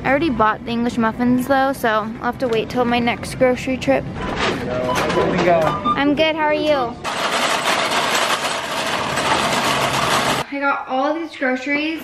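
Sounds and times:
wire shopping cart rattling: 7.0s - 10.4s.

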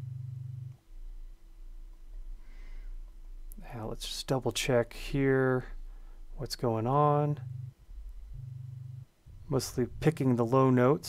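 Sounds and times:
buzzy low note: 0.0s - 3.5s, 4.3s - 11.0s
faint higher hum: 0.0s - 11.0s
low synthesized notes: 4.9s - 11.0s
deeper low tone: 5.0s - 10.8s.

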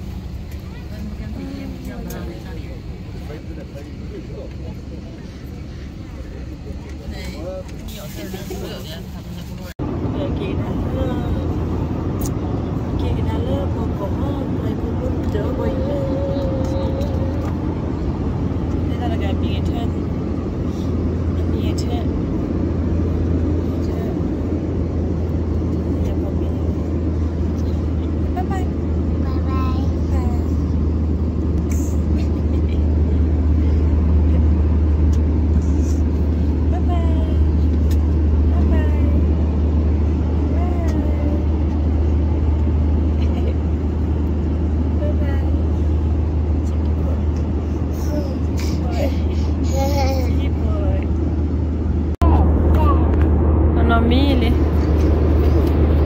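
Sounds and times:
airliner cabin engine drone: 0.0s - 56.0s.

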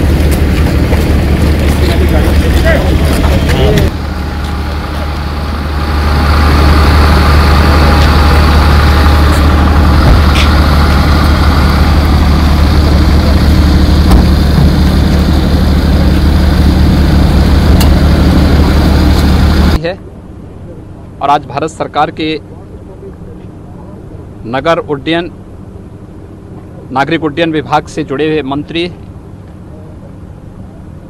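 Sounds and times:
vehicle engine idling: 0.0s - 31.0s
people talking: 1.6s - 3.9s, 7.4s - 8.7s, 19.8s - 25.3s, 26.6s - 29.0s.

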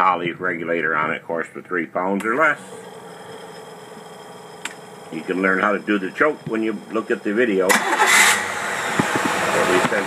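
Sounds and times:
engine idling: 2.4s - 10.0s.

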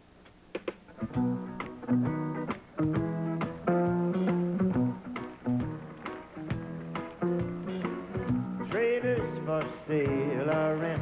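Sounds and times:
bass guitar: 0.8s - 11.0s
electric guitar: 0.8s - 11.0s.

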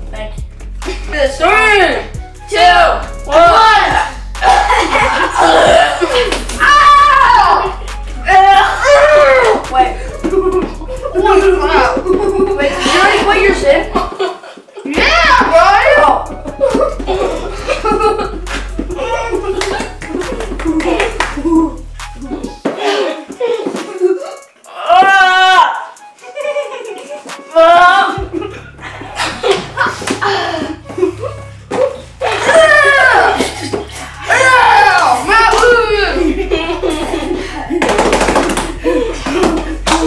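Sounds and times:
boy crying out: 3.4s - 12.0s, 19.0s - 19.9s, 22.8s - 26.0s, 27.5s - 28.5s, 29.8s - 36.3s
hand claps: 18.4s - 18.8s, 19.6s - 22.8s, 37.8s - 40.0s.

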